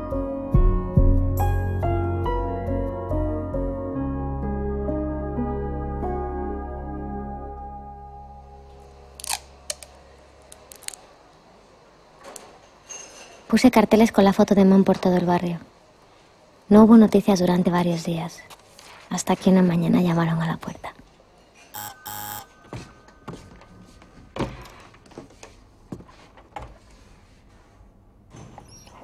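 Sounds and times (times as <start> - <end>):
electric doorbell buzzer: 21.8 - 22.6.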